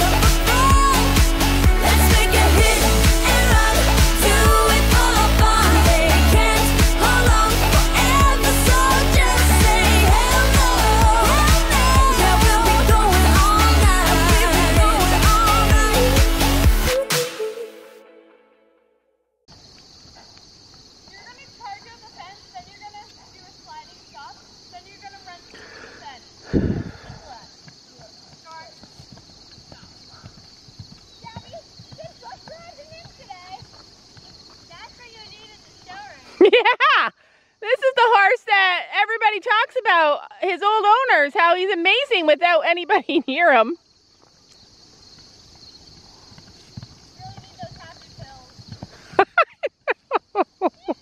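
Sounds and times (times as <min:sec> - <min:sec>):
horse hoofbeats on grass: 0:20.6 - 0:23.9, 0:27.2 - 0:36.3, 0:45.0 - 0:51.0.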